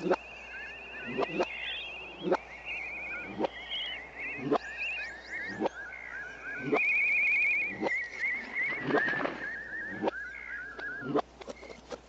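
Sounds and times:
chirping trilling animal calls: 0.0 - 11.8.

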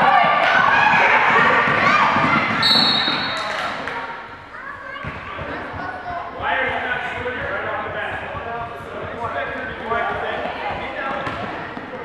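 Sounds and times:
voices calling out in hall: 0.0 - 12.0
basketball bouncing on court: 5.0 - 5.8, 9.6 - 12.0.

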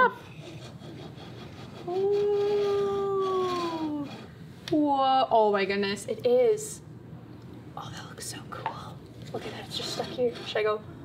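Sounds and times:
soft whispering voices: 7.8 - 10.3.

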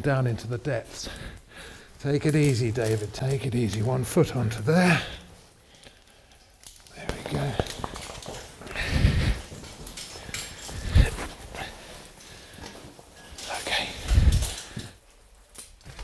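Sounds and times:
clothing and gear rustling: 0.4 - 16.0
effortful breathing: 0.8 - 2.2, 4.7 - 15.2.

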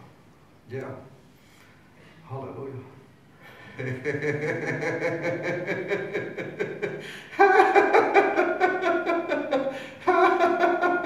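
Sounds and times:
man laughing: 3.6 - 11.0.

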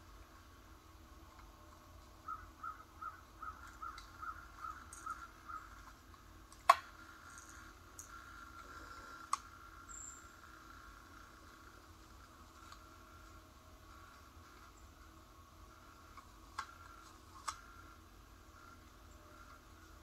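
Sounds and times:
bird calling: 2.2 - 6.0.

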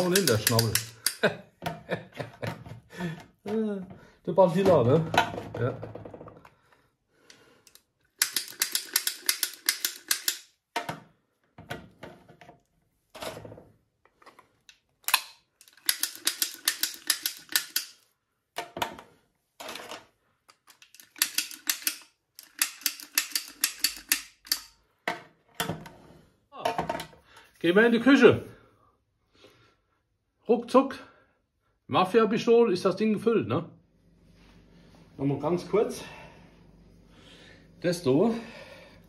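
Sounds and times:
filling gun clicking: 0.0 - 1.3, 7.3 - 10.5, 15.0 - 18.0, 20.7 - 24.8.

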